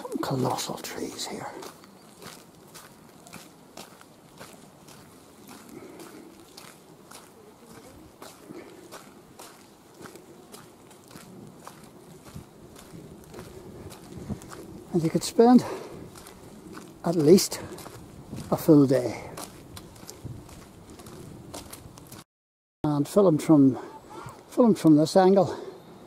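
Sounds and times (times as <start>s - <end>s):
footsteps walking: 0.0s - 22.2s.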